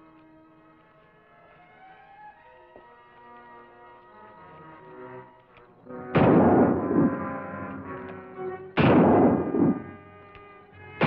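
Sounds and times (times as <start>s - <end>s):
background music: 0.0s - 11.0s
revolver shots echoing: 6.2s - 7.2s, 8.8s - 10.0s.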